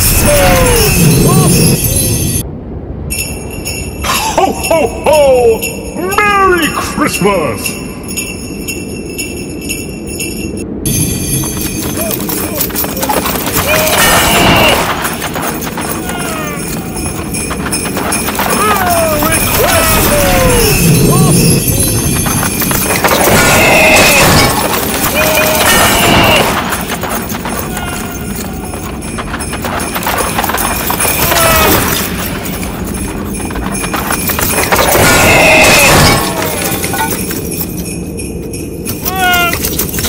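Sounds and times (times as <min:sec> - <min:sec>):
galloping hoofbeats: 0:10.9 - 0:35.6
hooves clip-clopping: 0:10.9 - 0:40.0.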